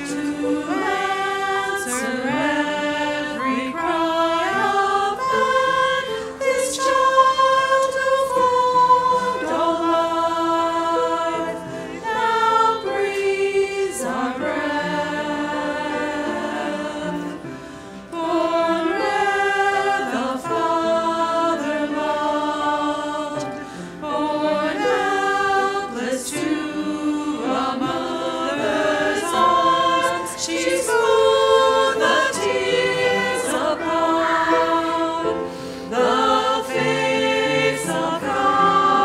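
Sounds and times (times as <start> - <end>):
choir singing: 0.0 - 39.0.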